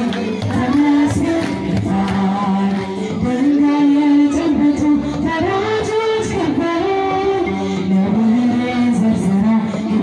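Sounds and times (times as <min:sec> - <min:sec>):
woman singing a hymn: 0:00.0 - 0:10.0.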